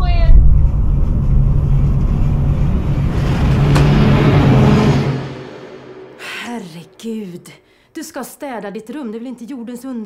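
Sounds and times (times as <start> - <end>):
low rumbling drone: 0.0 - 7.1
steady hum: 0.0 - 7.2.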